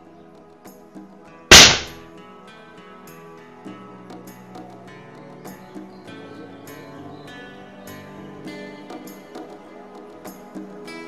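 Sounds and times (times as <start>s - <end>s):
pellet smacking a lead plate: 1.5s - 2.0s.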